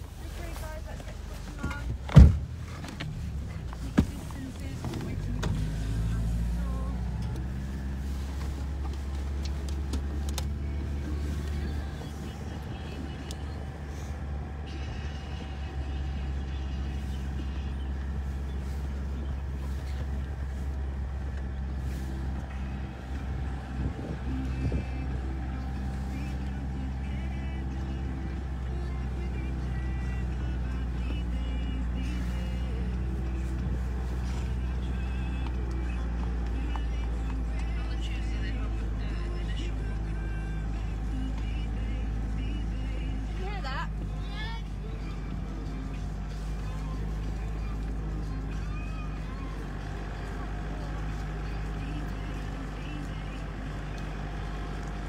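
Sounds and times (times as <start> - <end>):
car engine running while driving: 0.0 - 55.0.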